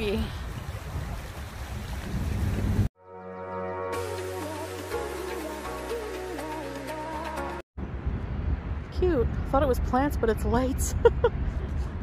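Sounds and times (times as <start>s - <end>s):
wind rumbling on microphone: 0.0s - 2.9s, 7.8s - 12.0s
background music with held notes: 3.0s - 7.6s.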